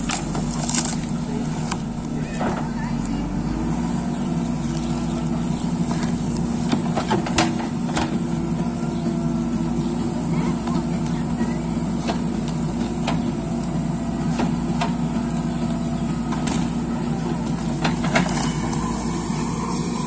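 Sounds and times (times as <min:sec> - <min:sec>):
diesel engine running: 0:00.0 - 0:20.0.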